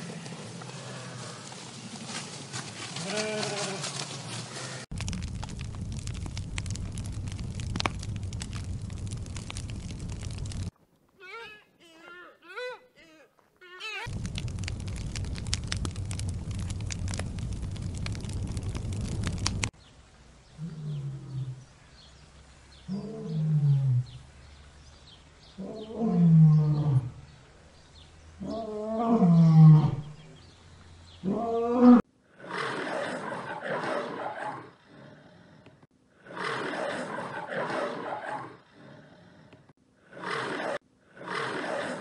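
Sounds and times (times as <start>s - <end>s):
crackly noise: 0.0s - 11.3s, 13.4s - 20.6s
burst of rough noise: 4.9s - 10.7s, 14.1s - 19.7s
lion roaring: 31.2s - 42.0s.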